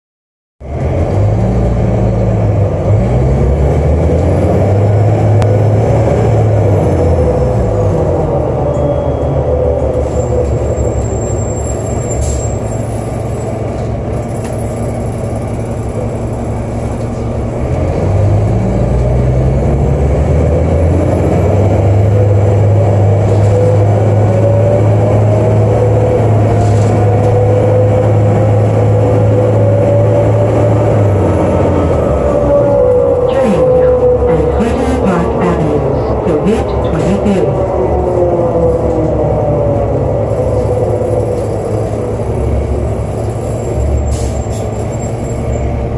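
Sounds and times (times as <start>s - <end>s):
bus diesel engine: 0.6s - 45.9s
transmission whine: 21.9s - 42.4s.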